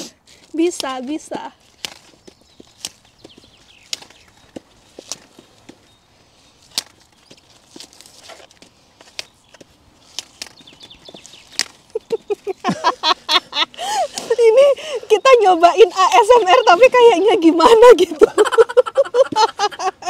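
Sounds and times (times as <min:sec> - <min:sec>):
sprouts snapping off stalk: 0:00.0 - 0:05.8, 0:06.6 - 0:12.2.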